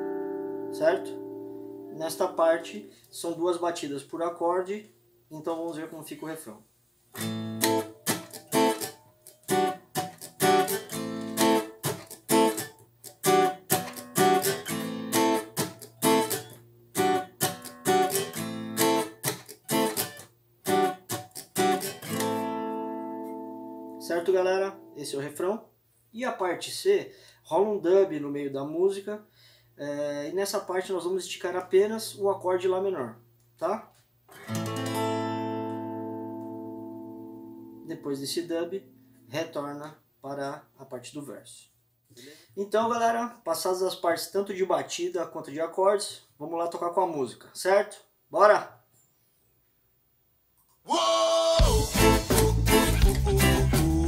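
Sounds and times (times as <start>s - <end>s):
acoustic guitar reggae strumming: 0.0s - 3.6s, 7.1s - 25.3s, 34.3s - 39.8s, 50.9s - 54.0s.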